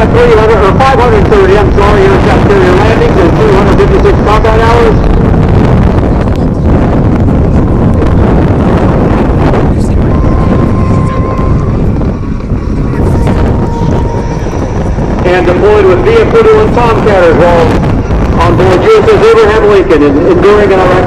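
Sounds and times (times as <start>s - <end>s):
jet engine noise: 0.0s - 21.0s
wind buffeting microphone: 0.0s - 21.0s.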